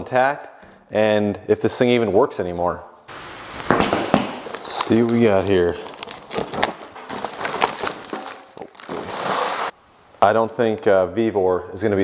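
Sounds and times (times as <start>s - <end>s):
plastic wrap crinkling: 3.1s - 9.8s
cardboard flaps rustling: 3.5s - 9.7s.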